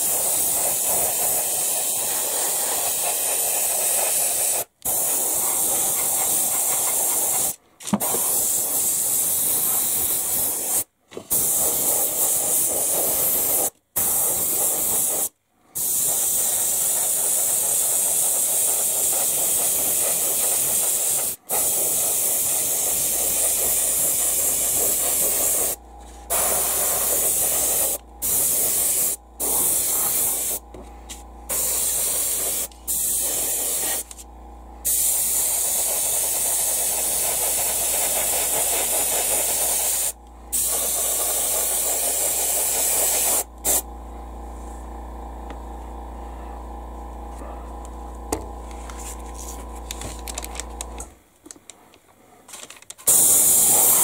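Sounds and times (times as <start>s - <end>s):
airbrush spraying hiss: 0.0s - 30.6s, 31.5s - 34.2s, 34.8s - 43.8s, 53.1s - 54.0s.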